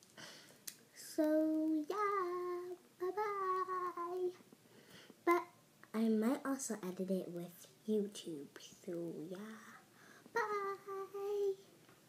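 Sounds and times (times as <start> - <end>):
girl singing held notes: 0.9 - 4.5, 5.2 - 11.7.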